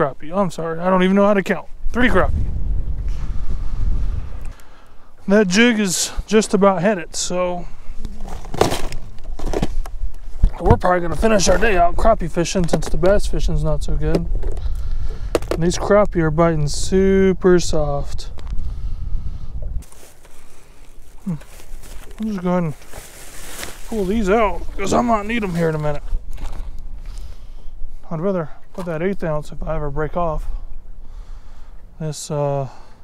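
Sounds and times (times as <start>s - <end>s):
wind buffeting microphone: 1.0s - 4.7s, 7.7s - 22.7s, 23.3s - 28.1s.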